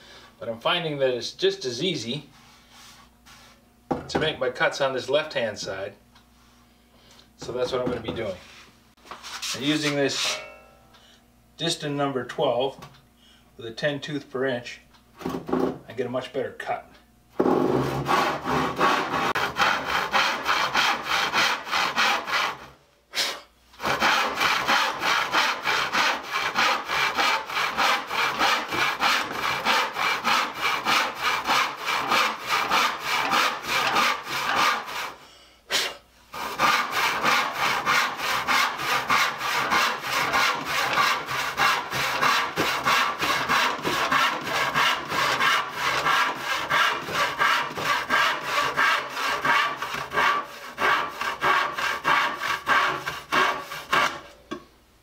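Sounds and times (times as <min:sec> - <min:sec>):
handsaw cutting wood: 0:17.4 - 0:54.3.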